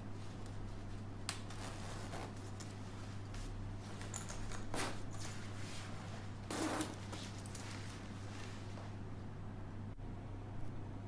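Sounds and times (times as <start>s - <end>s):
low steady hum: 0.0s - 11.0s
fabric rustling: 4.7s - 9.0s.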